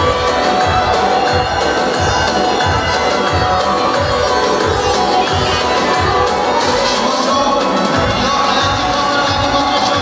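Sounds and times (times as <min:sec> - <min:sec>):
crowd cheering: 0:00.0 - 0:10.0
live dance music: 0:00.0 - 0:10.0.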